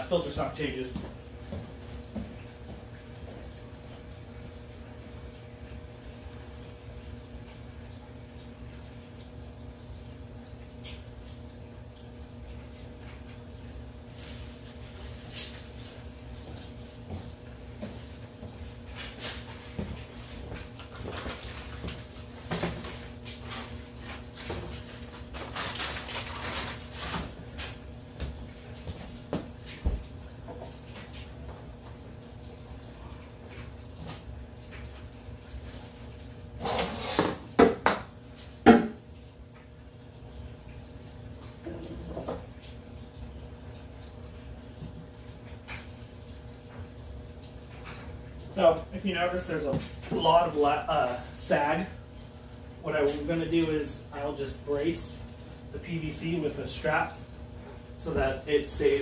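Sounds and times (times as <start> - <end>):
faint steady hum: 0.0 - 59.0
plastic pipe knocking and clattering: 37.1 - 39.0.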